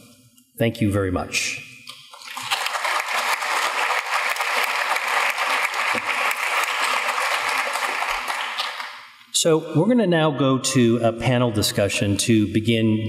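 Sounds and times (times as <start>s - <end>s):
audience applauding: 2.2s - 9.2s.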